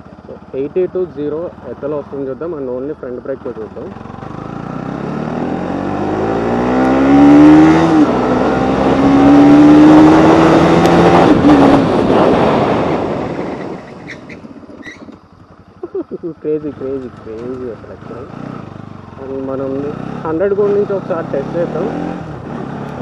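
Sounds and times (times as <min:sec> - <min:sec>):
motorcycle engine accelerating: 0:00.0 - 0:23.0
wind rush: 0:09.3 - 0:14.3
motorcycle braking to a stop: 0:10.0 - 0:15.8.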